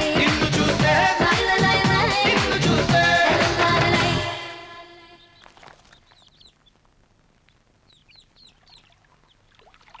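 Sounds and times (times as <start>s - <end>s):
birds chirping: 5.0s - 10.0s.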